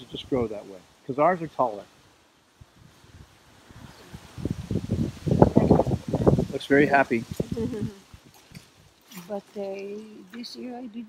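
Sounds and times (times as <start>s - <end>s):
shrub branches rustling: 1.6s - 11.0s.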